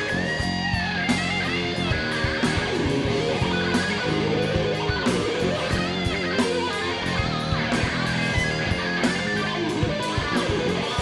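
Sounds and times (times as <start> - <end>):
bass guitar: 0.0 - 11.0
distorted electric guitar lead: 0.0 - 11.0
drums: 0.0 - 11.0
second guitar: 0.0 - 11.0.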